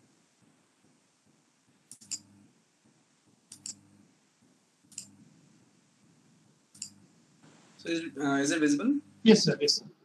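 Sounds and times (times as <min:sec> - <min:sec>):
computer mouse clicks: 0:01.9 - 0:02.3, 0:03.5 - 0:03.8, 0:04.9 - 0:05.2, 0:06.7 - 0:07.0.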